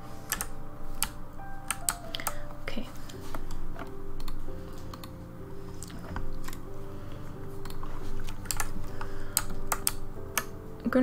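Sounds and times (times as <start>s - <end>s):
quiet piano music: 0.0s - 11.0s
keyboard keys clicking: 0.1s - 6.8s, 7.4s - 11.0s.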